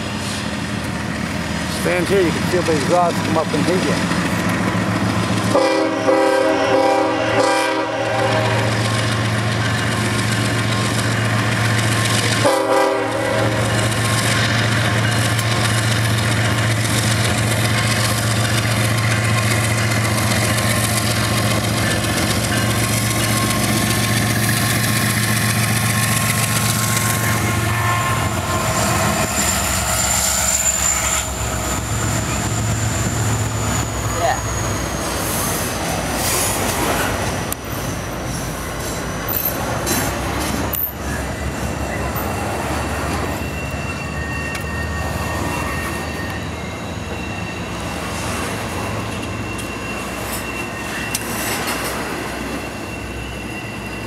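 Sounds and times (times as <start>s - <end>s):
train wheel squealing: 0.0s - 6.8s, 8.3s - 54.0s
diesel locomotive engines droning: 0.0s - 54.0s
train air horn: 5.5s - 8.7s, 12.4s - 13.8s.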